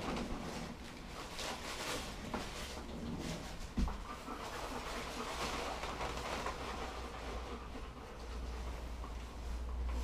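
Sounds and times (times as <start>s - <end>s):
dog panting: 3.5s - 10.0s.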